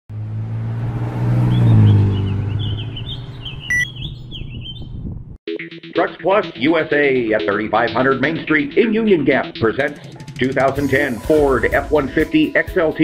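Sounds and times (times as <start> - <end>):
motor vehicle driving past: 0.1 - 4.3
birds chirping: 1.3 - 5.1
short electronic beep: 3.7 - 4.0.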